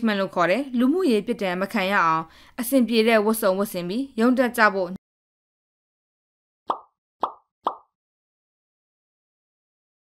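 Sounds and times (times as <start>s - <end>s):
pop sound effects: 6.7s - 7.9s.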